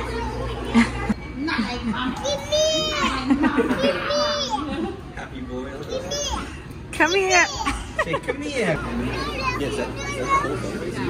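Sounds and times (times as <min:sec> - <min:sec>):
toddlers babbling: 0:02.0 - 0:05.0, 0:05.8 - 0:07.9, 0:09.0 - 0:11.0.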